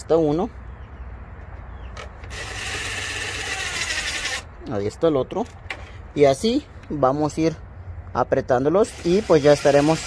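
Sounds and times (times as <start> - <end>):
cordless impact tool spinning: 2.3 - 4.5.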